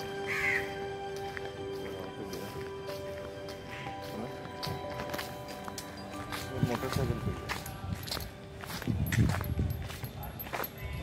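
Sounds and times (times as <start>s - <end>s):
music of long held notes: 0.0s - 10.9s.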